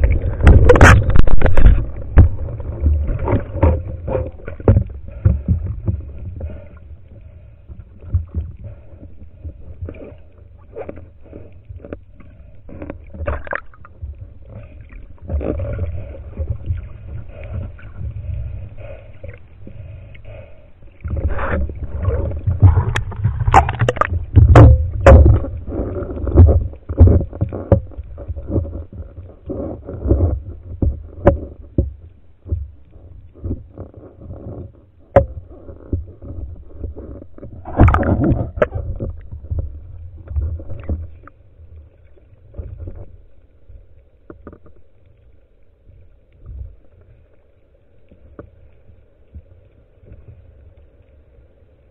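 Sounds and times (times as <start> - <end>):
low rumble: 0.0 - 11.7, 13.8 - 29.4
water sloshing and rushing: 0.0 - 51.9.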